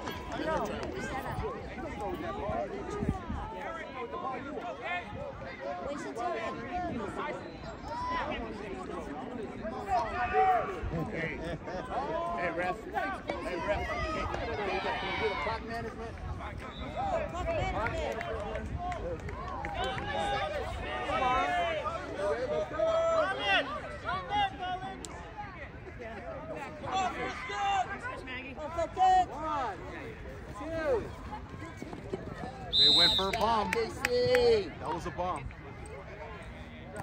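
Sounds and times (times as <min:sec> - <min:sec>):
indistinct chatter: 0:00.0 - 0:37.0.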